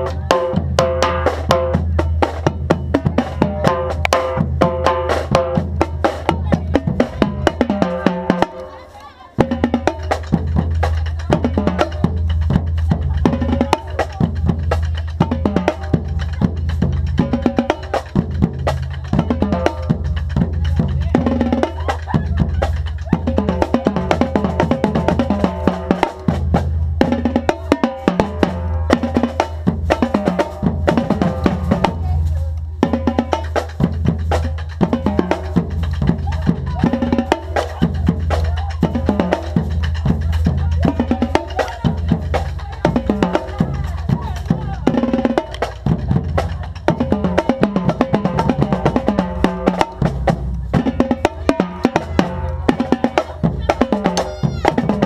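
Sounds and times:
snare drums: 0.0 - 55.0
tenor drums: 0.0 - 55.0.

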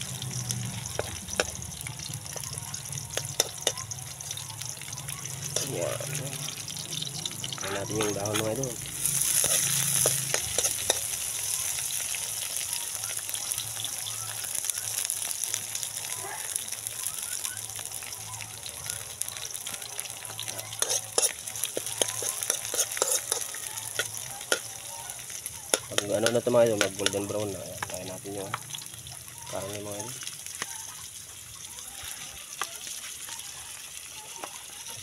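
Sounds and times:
food sizzling in hot oil: 0.0 - 35.0
metal spoon scraping a wok: 0.8 - 4.0, 5.2 - 11.8, 20.4 - 24.7.

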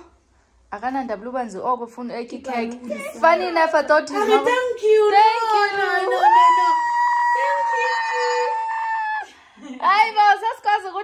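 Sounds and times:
young child wailing: 6.1 - 9.3.

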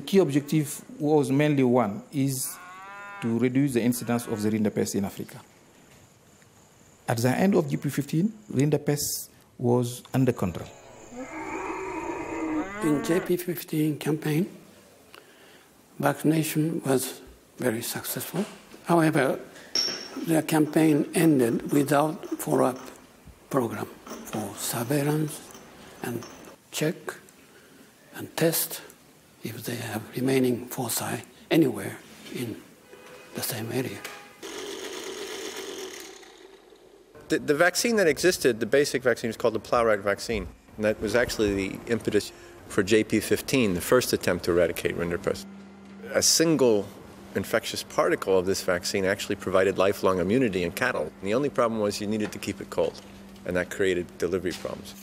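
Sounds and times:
cow mooing: 2.5 - 4.6, 10.6 - 13.3
vortex mixer motor buzz: 34.4 - 37.0.

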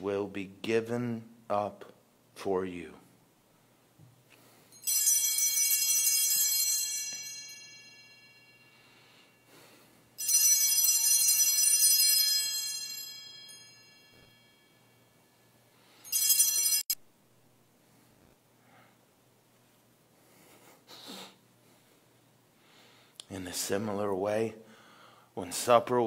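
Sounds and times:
altar bells ringing: 4.5 - 17.0.

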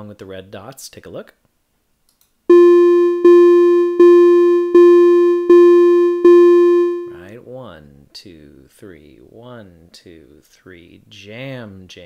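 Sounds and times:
electronic note: 2.5 - 7.2.

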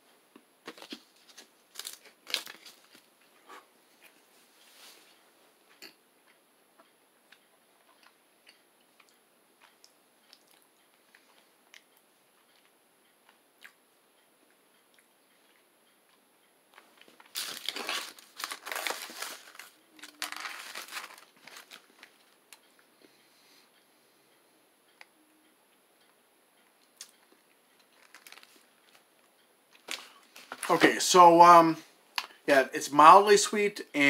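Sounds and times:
wrapper crinkling: 0.7 - 3.1, 17.1 - 22.2, 27.9 - 28.6.

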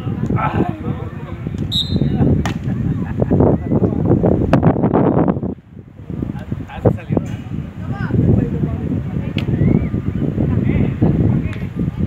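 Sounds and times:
wind buffeting microphone: 0.0 - 12.0.

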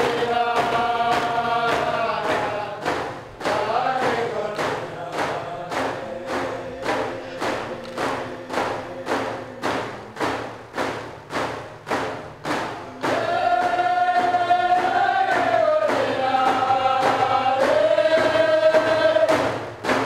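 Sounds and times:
chant-like singing: 0.0 - 20.0
steady drum beats: 0.0 - 20.0.

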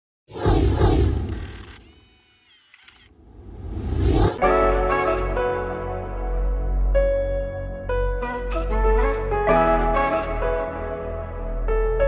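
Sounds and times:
rising swell: 3.3 - 4.5.

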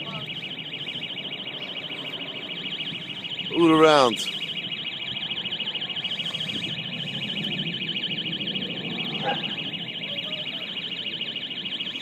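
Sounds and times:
warbling electronic alarm: 0.0 - 12.0.

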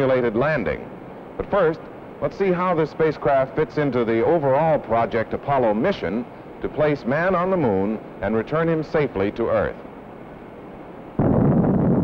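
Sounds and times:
film hiss: 0.0 - 12.0
rocket engine exhaust roar: 0.0 - 12.0.

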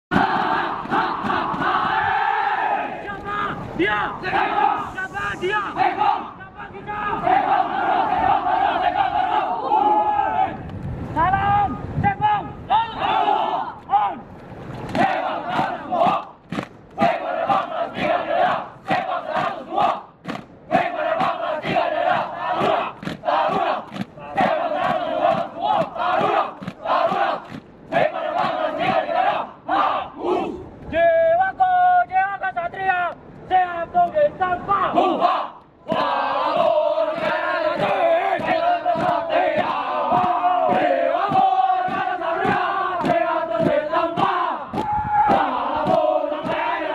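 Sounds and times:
group shouting rhythmic chant: 0.1 - 10.6, 12.7 - 14.2, 14.9 - 31.1, 34.8 - 46.9.

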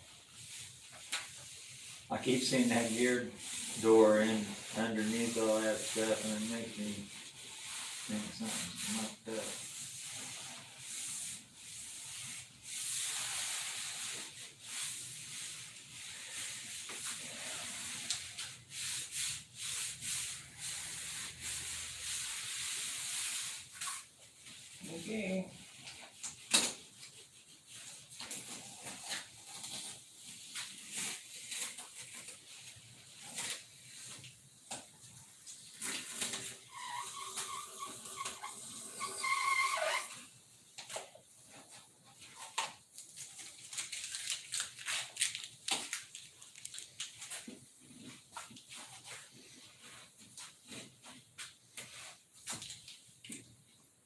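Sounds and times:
hand sanding scratchy hiss: 0.4 - 25.8.

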